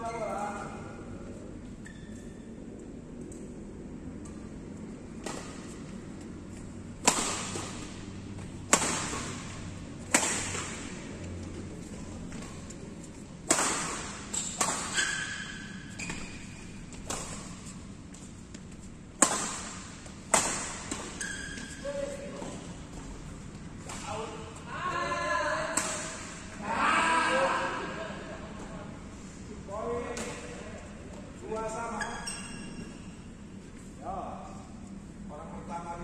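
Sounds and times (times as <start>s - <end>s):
badminton racket hitting shuttlecock: 7.0s - 8.0s, 8.6s - 11.1s, 13.4s - 17.6s, 19.2s - 21.6s.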